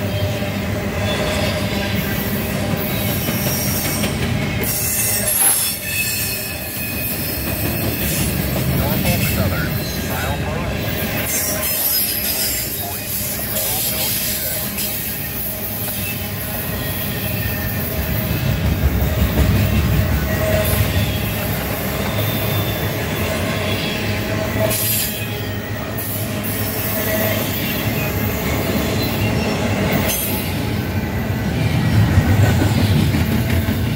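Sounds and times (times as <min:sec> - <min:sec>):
faint high wheel squeal: 0:00.0 - 0:18.5, 0:20.1 - 0:30.6
train wheels rumbling over rails: 0:00.0 - 0:33.9.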